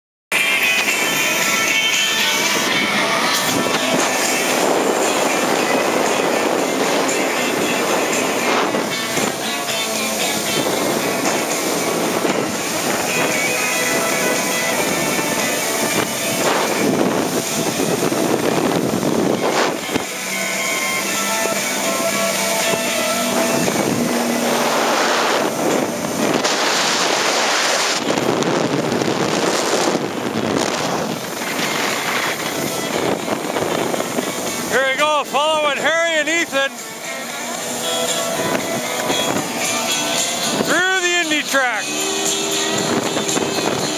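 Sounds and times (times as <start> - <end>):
music playing: 0.3 - 28.0, 31.0 - 43.9
watercraft engine at speed: 0.3 - 43.9
wind on microphone: 0.3 - 43.9
water spray: 0.4 - 28.4.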